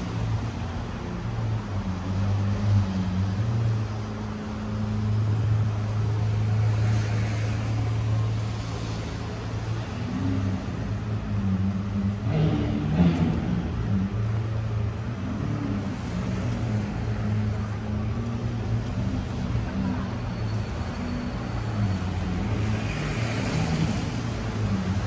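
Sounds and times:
traffic noise: 0.0s - 25.0s.

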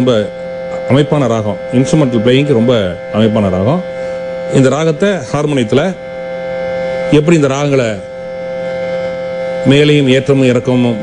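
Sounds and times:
harmonium drone: 0.0s - 11.0s.

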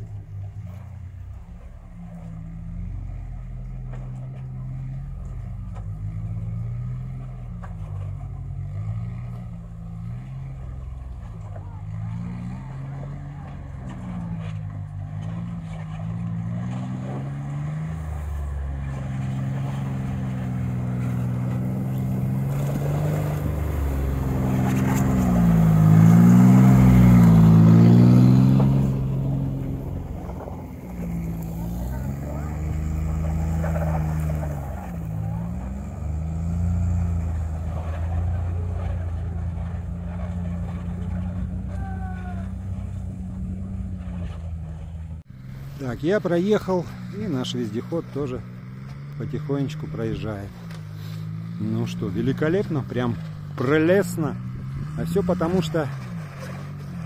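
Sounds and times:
tracked vehicle engine revving: 0.0s - 57.0s.

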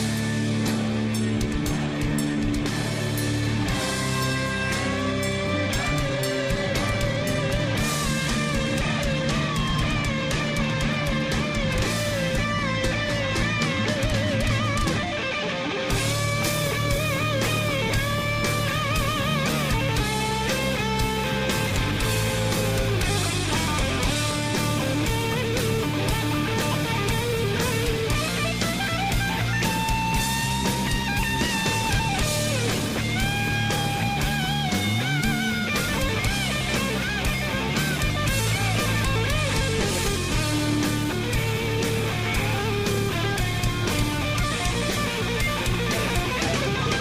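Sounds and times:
bass guitar: 0.0s - 47.0s
distorted rhythm guitar: 0.0s - 47.0s
electric guitar lead: 0.0s - 47.0s
steady drums: 0.0s - 47.0s.

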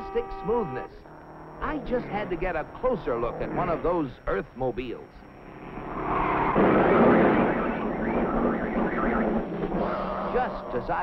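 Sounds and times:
car rushing past: 5.6s - 10.2s.

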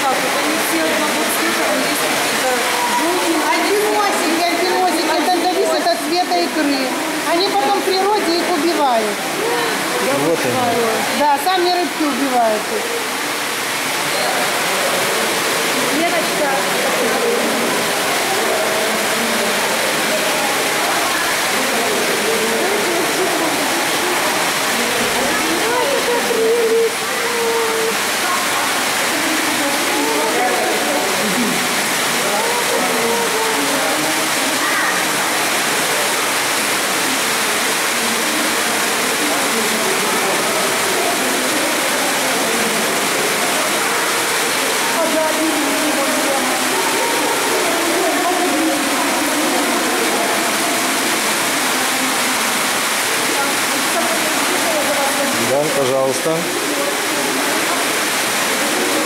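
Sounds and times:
indistinct voices murmuring: 0.0s - 59.0s
water rushing in a tank: 0.0s - 59.0s.

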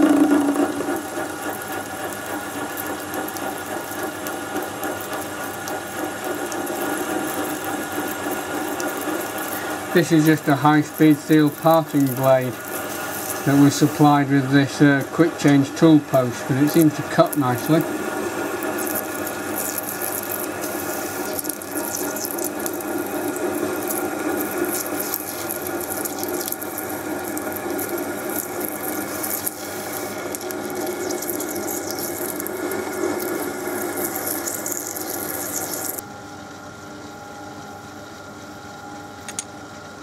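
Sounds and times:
lathe running hum: 0.0s - 40.0s
cutting hiss and chatter: 9.5s - 17.9s.

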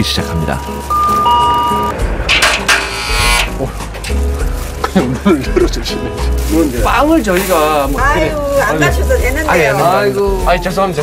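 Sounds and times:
background music: 0.0s - 11.0s
electronic doorbell chime: 0.5s - 1.9s
electric lock buzz: 2.3s - 3.5s.

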